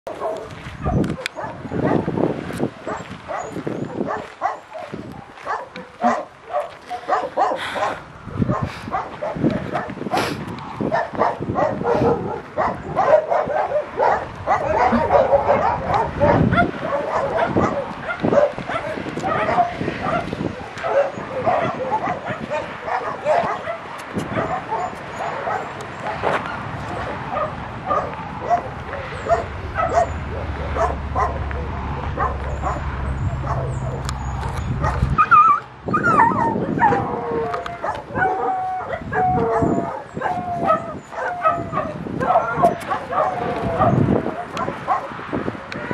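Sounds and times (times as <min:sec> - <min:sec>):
dogs barking and whining: 0:00.1 - 0:45.9.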